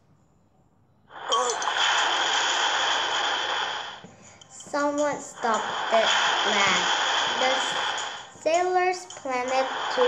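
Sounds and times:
steady rushing hiss: 1.1s - 10.0s.

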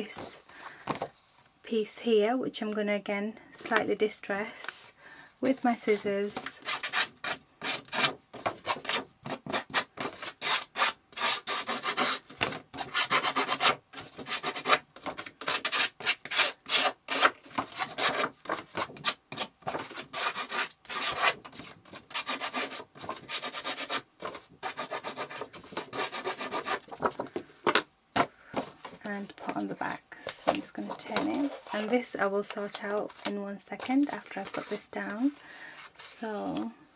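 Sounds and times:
scissor blade scraping paper: 6.6s - 26.9s.

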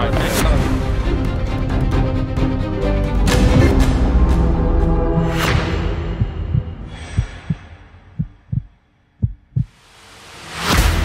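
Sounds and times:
music: 0.0s - 7.7s, 9.6s - 11.0s
heartbeat effect thumps: 6.1s - 9.8s.

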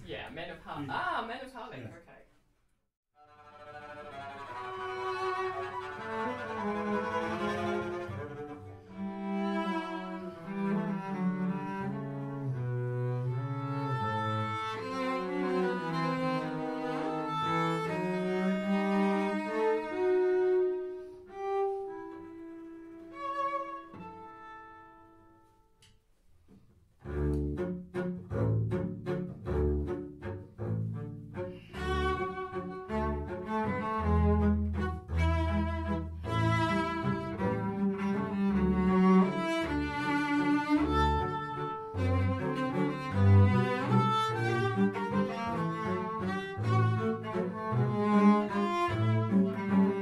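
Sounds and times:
cello and double bass duo: 3.2s - 25.4s, 26.6s - 50.0s.

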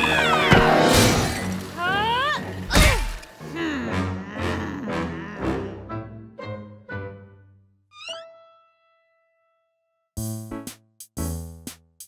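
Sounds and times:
background music: 0.0s - 9.5s, 10.2s - 12.0s
crash with shattering: 0.4s - 1.8s.

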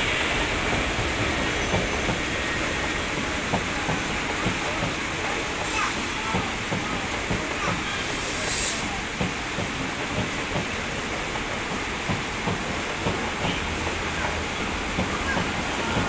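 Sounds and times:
electric locomotive passing: 0.0s - 16.0s
train wheels clicking over rail joints: 0.0s - 16.0s.

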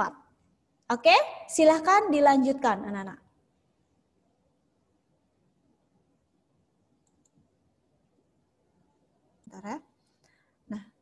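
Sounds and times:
faint clicks: 7.0s - 7.4s.

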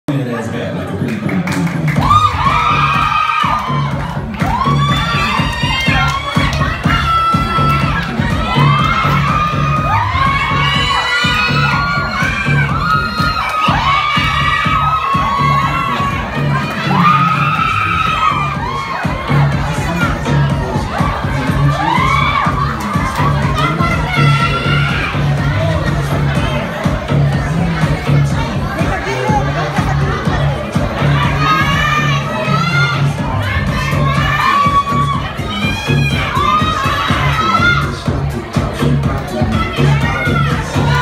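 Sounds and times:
dance music with pulsing bass: 0.1s - 41.0s
high-pitched shouting and cheering: 1.8s - 41.0s.

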